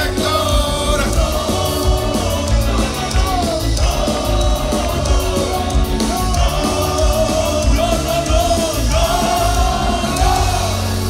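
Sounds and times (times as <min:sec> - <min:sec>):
live ska band playing: 0:00.0 - 0:11.0.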